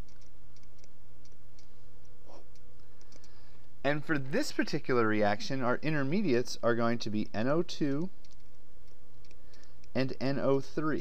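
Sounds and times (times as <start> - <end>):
stylus tapping tablet screen: 0.0 - 3.7
low hum: 0.0 - 11.0
man speaking: 3.8 - 8.1, 10.0 - 11.0.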